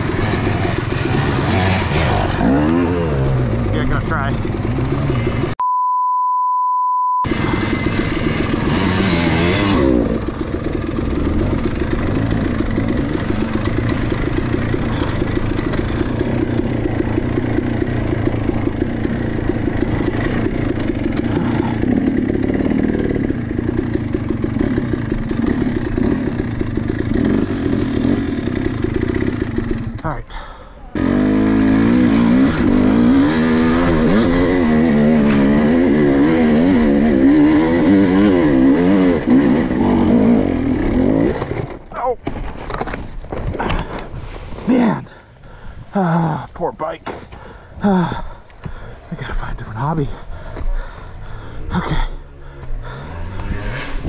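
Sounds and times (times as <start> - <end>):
dirt bike engine revving: 0.0 - 5.6, 7.2 - 30.2, 30.9 - 42.2, 45.9 - 54.0.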